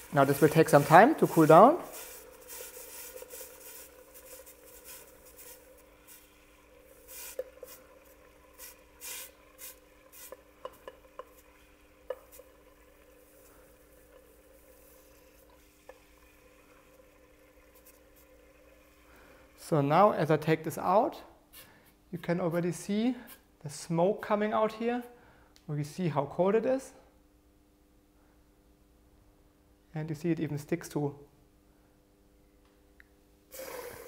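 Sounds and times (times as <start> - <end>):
liquid nitrogen bubbling and crackling: 0.0 - 20.3.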